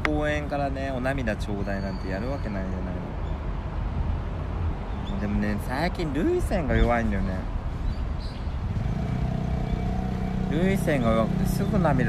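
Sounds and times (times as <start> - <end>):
vehicle engine humming: 3.0 - 12.0.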